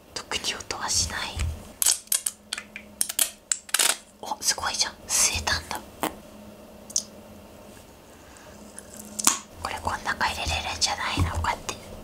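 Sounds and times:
man whispering: 4.2s - 5.8s, 9.6s - 11.8s.

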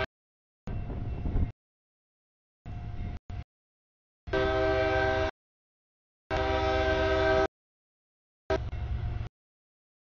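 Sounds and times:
train low rumble: 0.7s - 1.6s, 2.6s - 3.5s, 4.3s - 5.4s, 6.3s - 7.5s, 8.5s - 9.3s
locomotive air horn blast: 4.3s - 5.4s, 6.3s - 7.5s.

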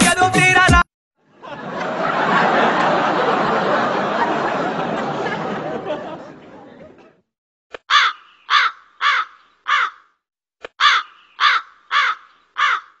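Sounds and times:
crow cawing: 7.9s - 10.2s, 10.8s - 13.0s.

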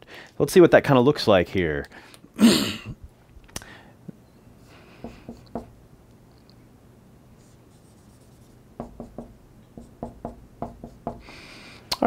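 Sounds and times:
marker writing on a whiteboard: 5.0s - 5.7s, 7.4s - 11.3s.

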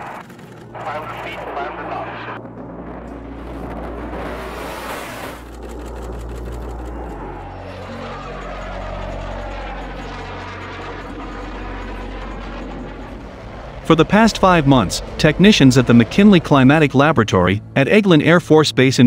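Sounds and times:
fighter jet roar passing: 0.0s - 18.4s.

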